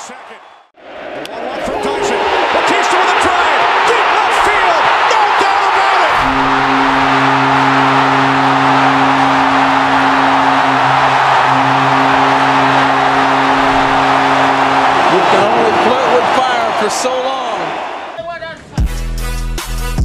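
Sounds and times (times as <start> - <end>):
stadium crowd roaring: 0.0 - 18.2
steady low droning tone: 6.2 - 15.5.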